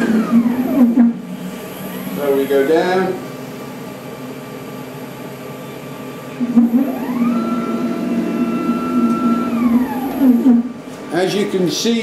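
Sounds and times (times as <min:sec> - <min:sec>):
router motor humming: 0:00.0 - 0:01.1, 0:06.4 - 0:10.7
drive motors whining: 0:00.0 - 0:02.6, 0:06.4 - 0:10.8.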